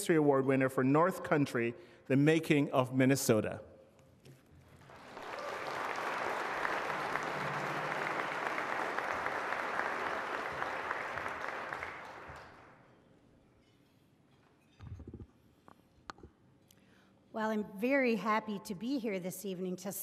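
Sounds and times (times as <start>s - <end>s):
audience applauding: 4.8s - 12.8s.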